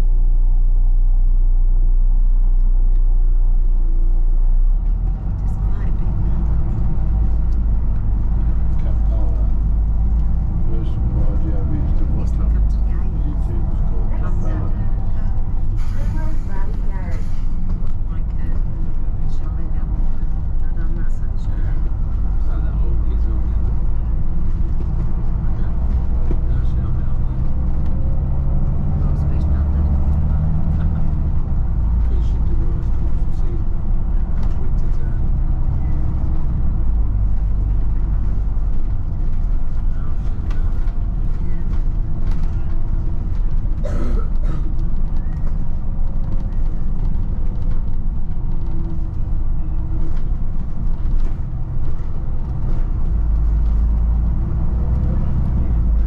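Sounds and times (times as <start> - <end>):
bus diesel engine and road noise: 0.0 - 56.0.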